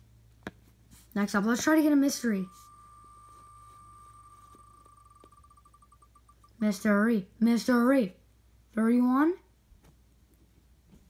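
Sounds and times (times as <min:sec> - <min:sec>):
spinning wheel ticking from phone: 0:01.6 - 0:06.8.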